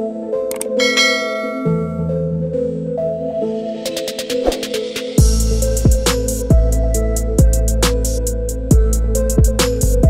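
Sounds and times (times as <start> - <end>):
synth background music: 0.0 - 10.0
bell-like chime: 0.7 - 2.2.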